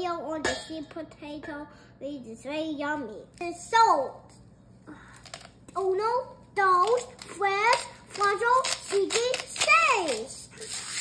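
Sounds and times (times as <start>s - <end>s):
young child talking: 0.0s - 5.1s, 5.7s - 10.7s.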